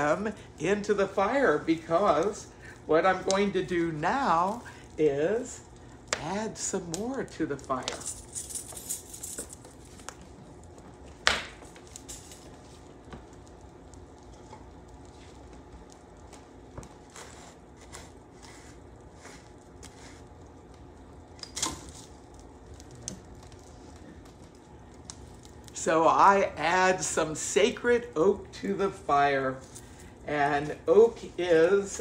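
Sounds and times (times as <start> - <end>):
fire crackling: 0.0 - 32.0.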